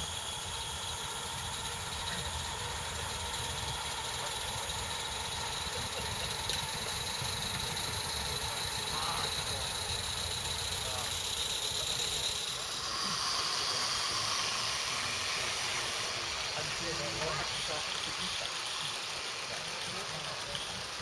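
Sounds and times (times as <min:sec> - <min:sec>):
steam locomotive hissing: 0:00.0 - 0:21.0
faint people's voices: 0:03.6 - 0:21.0.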